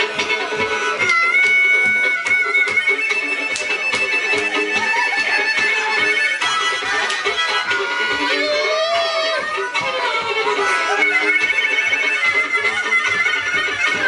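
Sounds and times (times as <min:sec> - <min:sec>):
fiddle: 0:00.0 - 0:14.0
harmonica: 0:00.0 - 0:14.0.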